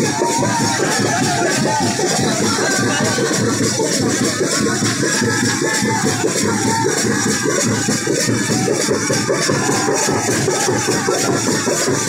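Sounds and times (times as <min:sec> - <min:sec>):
folk drums beaten fast: 0:00.0 - 0:12.0.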